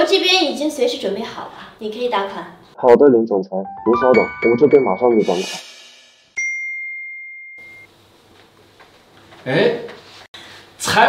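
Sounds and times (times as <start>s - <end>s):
high phone notification chime: 3.8s - 5.4s, 6.4s - 7.9s.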